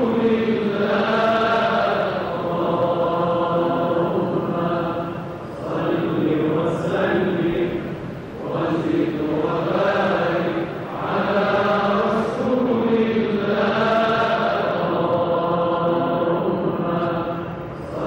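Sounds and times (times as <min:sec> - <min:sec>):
man chanting recitation: 0:00.0 - 0:18.0.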